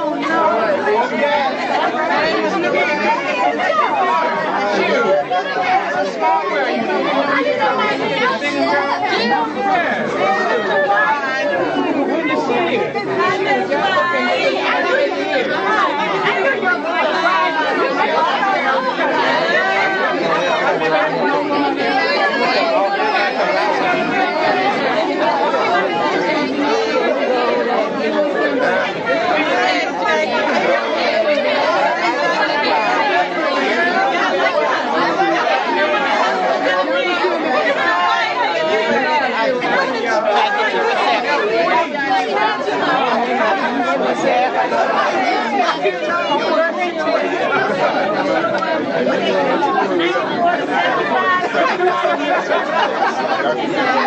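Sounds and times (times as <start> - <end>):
babble of overlapping voices: 0.0 - 54.0.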